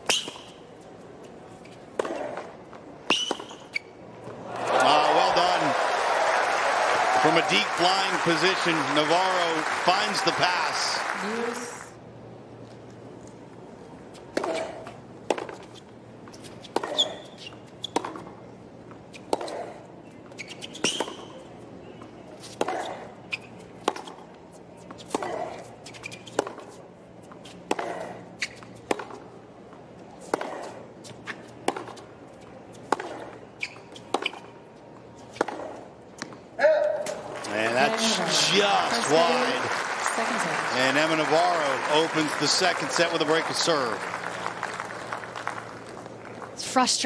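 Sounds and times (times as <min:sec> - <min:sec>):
low crowd hum: 0:04.0 - 0:20.4, 0:21.2 - 0:47.0
tennis ball hits and bounces: 0:14.2 - 0:15.7, 0:16.3 - 0:18.4, 0:19.2 - 0:19.8, 0:20.4 - 0:21.4, 0:24.9 - 0:26.8, 0:27.4 - 0:29.3, 0:30.2 - 0:32.1, 0:32.7 - 0:34.5, 0:35.3 - 0:36.4.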